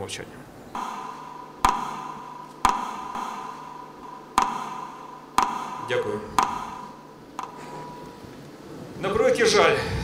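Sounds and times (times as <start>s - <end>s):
metronome ticks: 0.8s - 8.5s.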